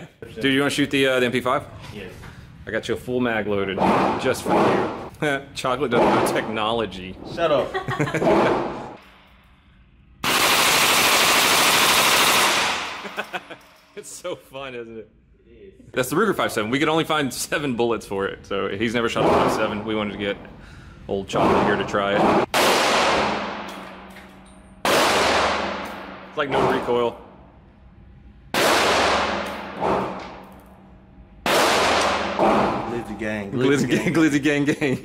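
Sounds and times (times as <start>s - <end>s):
submachine gun automatic burst: 10.2s - 13.0s
pistol shot echoing indoors: 10.2s - 13.4s, 21.4s - 24.2s, 24.8s - 26.9s, 28.5s - 30.7s, 31.4s - 32.9s.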